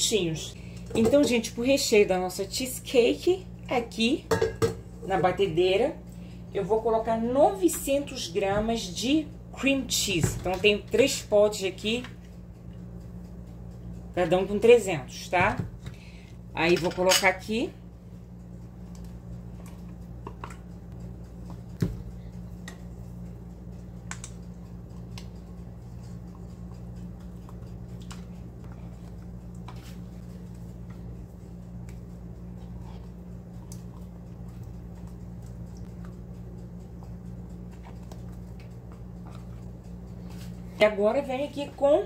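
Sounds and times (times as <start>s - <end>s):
low electrical hum: 0.0s - 42.0s.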